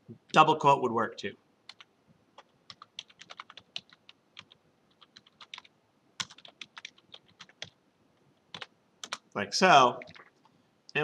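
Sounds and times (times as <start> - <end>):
typing on computer keyboard: 1.7 - 7.8, 8.5 - 9.2, 10.0 - 10.4.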